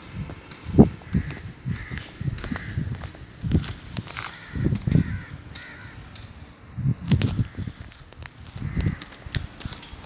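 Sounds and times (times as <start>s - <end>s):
footsteps on dirt road: 0.0s - 6.3s, 7.1s - 10.0s.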